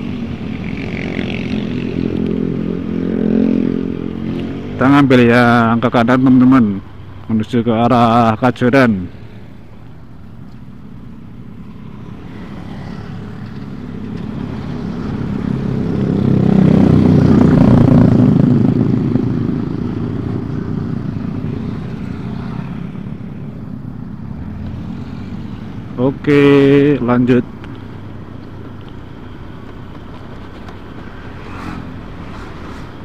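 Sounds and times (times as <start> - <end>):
motorcycle engine drone: 0.0 - 33.0
road and wind noise: 0.0 - 33.0.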